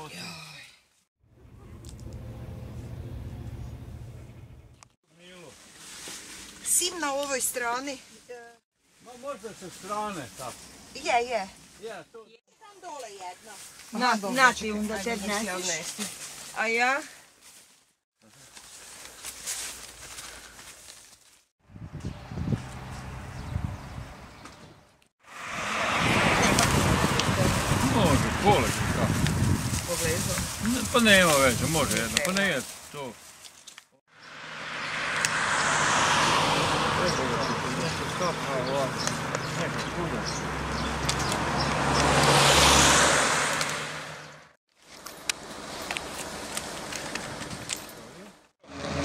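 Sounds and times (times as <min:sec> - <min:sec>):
plants rustling: 0:05.2 - 0:11.9, 0:12.8 - 0:21.5, 0:26.6 - 0:34.0, 0:44.7 - 0:48.3
car passing: 0:22.2 - 0:24.4, 0:25.2 - 0:29.3, 0:34.1 - 0:44.6, 0:48.6 - 0:49.0.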